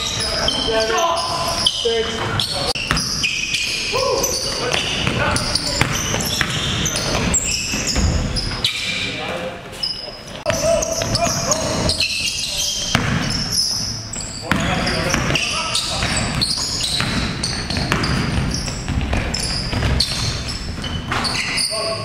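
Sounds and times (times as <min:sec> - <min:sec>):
sneakers squeaking: 0:00.0 - 0:22.0
basketball bouncing on hardwood: 0:16.0 - 0:21.3.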